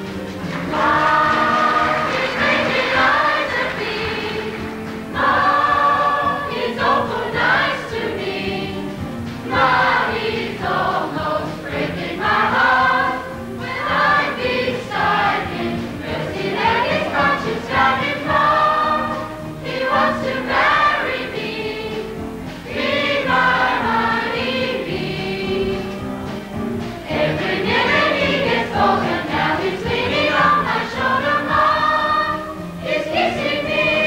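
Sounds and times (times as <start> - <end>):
chorus singing: 0.0 - 34.0
musical accompaniment: 0.0 - 34.0.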